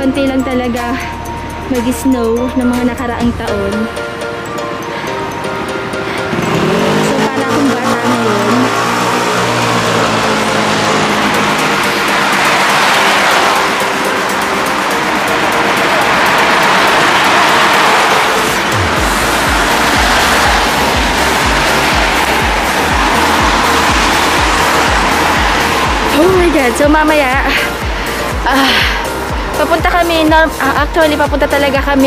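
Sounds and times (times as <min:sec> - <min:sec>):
background music: 0:00.0 - 0:32.0
steady low beat: 0:00.0 - 0:32.0
tyres hissing on wet road: 0:04.9 - 0:31.1.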